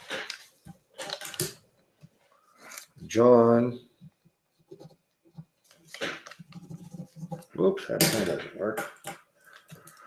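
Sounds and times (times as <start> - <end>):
faint paper rustle: 4.6 - 7.7
pen scratching on paper: 6.4 - 7.5.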